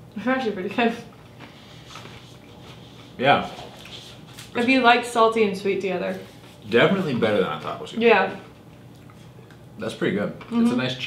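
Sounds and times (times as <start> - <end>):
faint chewing: 1.0 - 4.6, 8.6 - 9.6.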